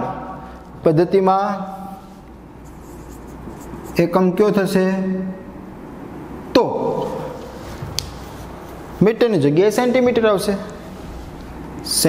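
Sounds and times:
marker pen scratching on whiteboard: 1.9s - 4.1s.

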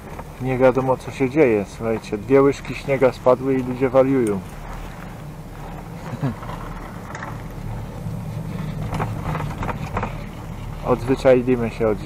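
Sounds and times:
chairlift rumble: 0.0s - 12.0s.

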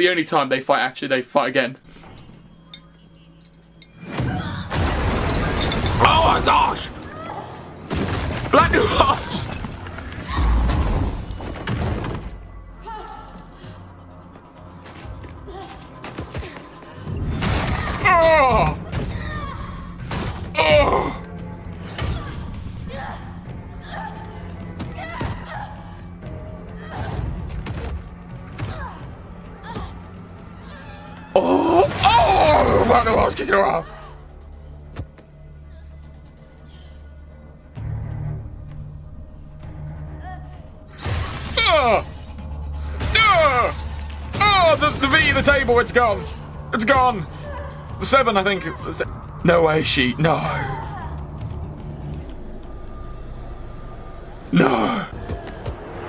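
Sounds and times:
tense music score: 0.0s - 56.0s.

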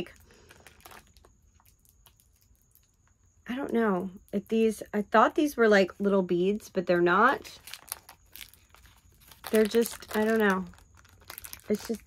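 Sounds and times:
plastic bag crinkling: 0.0s - 3.1s, 7.2s - 12.0s.

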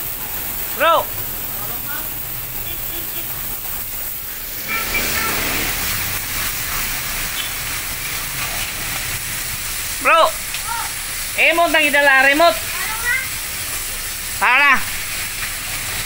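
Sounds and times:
pressure washer spraying water: 0.0s - 16.0s.

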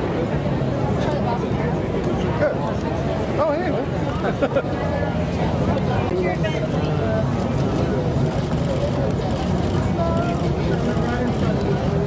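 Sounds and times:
voices calling and chattering: 0.0s - 12.0s.

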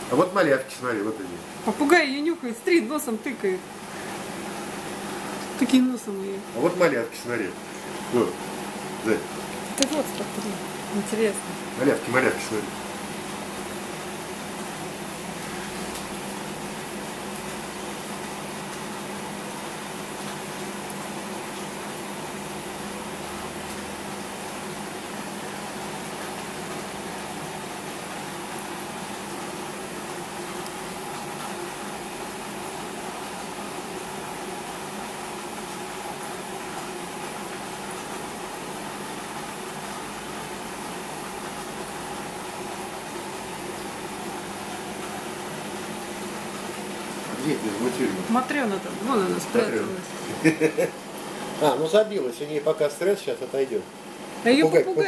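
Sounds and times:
aquarium pump hum: 0.0s - 55.0s.

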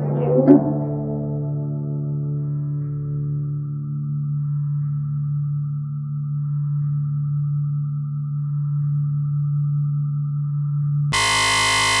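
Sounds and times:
harsh buzzy tone: 11.2s - 12.0s
low drone hum: 11.2s - 12.0s.

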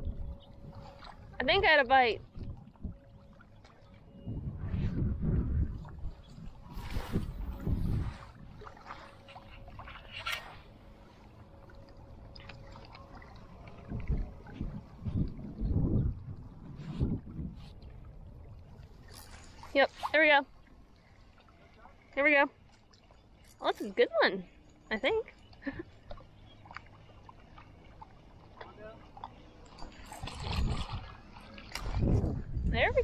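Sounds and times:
wind buffeting microphone: 0.0s - 3.3s, 4.0s - 10.8s, 12.1s - 20.4s, 29.8s - 33.0s.

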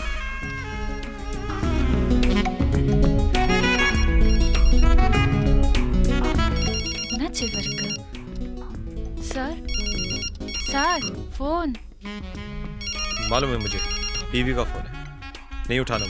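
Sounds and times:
music: 0.0s - 16.0s
telephone ringtone: 3.8s - 5.4s, 6.3s - 8.2s, 9.6s - 11.3s, 12.8s - 14.8s.

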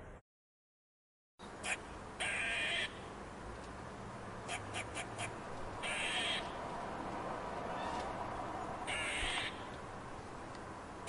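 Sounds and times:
crow cawing: 1.6s - 3.0s, 4.5s - 6.6s, 7.7s - 8.1s, 8.8s - 9.8s.

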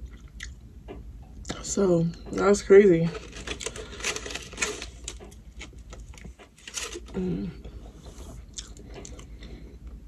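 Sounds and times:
wet chewing: 8.5s - 9.4s.

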